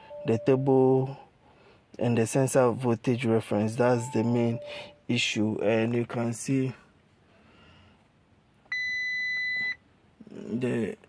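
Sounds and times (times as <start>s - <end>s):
high warning beep: 0.0s - 1.0s, 3.8s - 4.9s, 8.7s - 9.8s.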